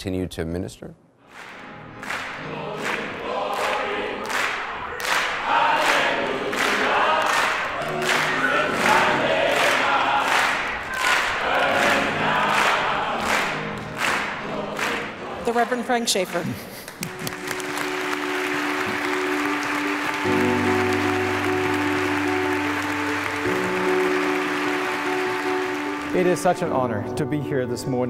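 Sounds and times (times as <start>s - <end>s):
steady handclaps: 1.3s - 26.5s
choir singing a gospel song: 2.0s - 15.6s.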